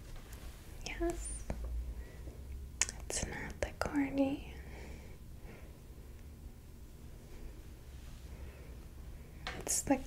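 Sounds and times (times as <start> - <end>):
woman whispering: 0.8 - 1.5, 2.8 - 4.6.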